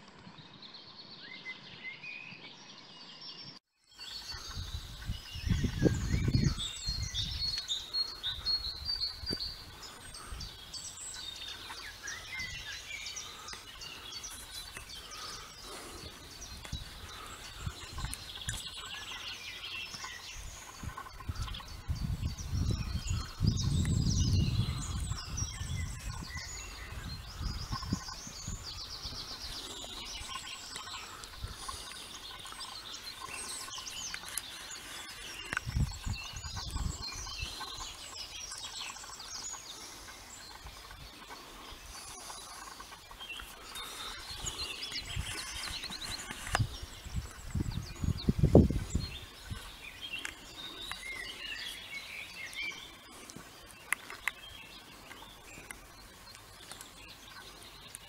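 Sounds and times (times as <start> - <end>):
songbirds singing: 0.0 - 58.0.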